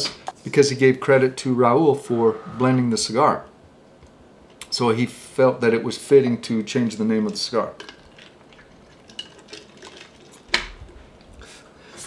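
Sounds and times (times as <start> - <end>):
faint drinking sounds: 7.3 - 11.8.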